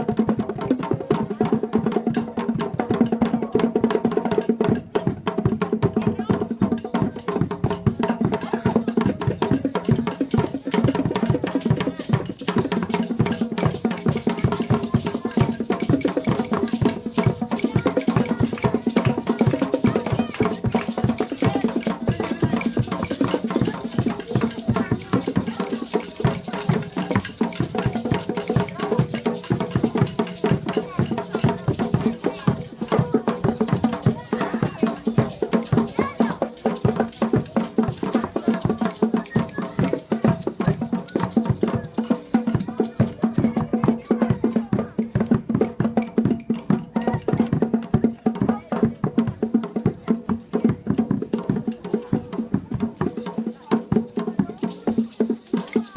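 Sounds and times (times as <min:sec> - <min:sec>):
children playing hand percussion: 0:00.0 - 0:55.9.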